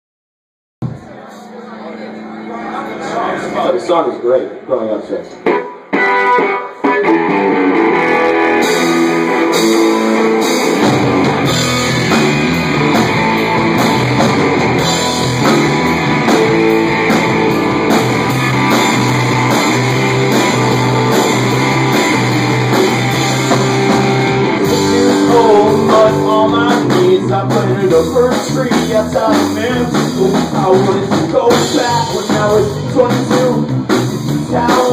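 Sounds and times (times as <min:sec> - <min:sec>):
electric guitar: 0:05.3 - 0:34.9
low bass notes: 0:07.1 - 0:34.9
drums and cymbals: 0:08.6 - 0:34.9
person singing: 0:24.6 - 0:34.9.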